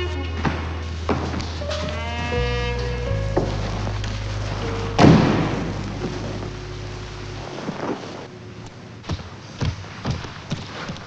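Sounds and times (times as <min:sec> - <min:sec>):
high sustained note: 0:00.0 - 0:08.6
low bass drone: 0:00.0 - 0:08.9
loud ringing crash: 0:04.5 - 0:08.0.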